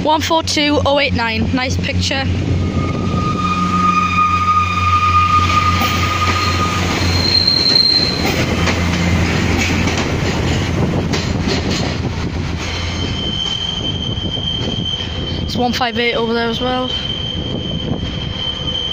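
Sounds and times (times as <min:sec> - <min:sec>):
train diesel engine drone: 0:00.0 - 0:18.9
wheels squealing on track: 0:02.6 - 0:08.8, 0:12.8 - 0:18.9.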